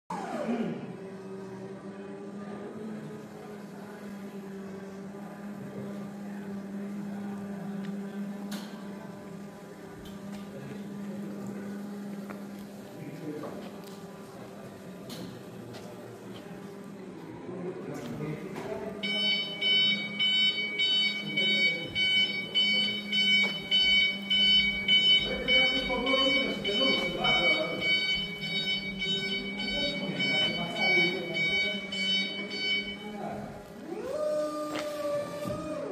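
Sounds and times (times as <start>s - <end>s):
electric forklift humming: 0.1s - 35.9s
forklift reversing alarm beeping: 18.9s - 33.7s.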